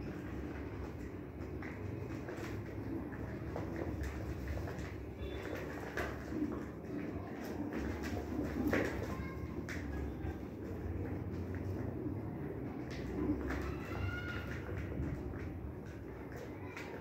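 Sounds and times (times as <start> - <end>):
pigeons cooing: 1.6 - 16.8
high pigeon call: 12.4 - 15.2.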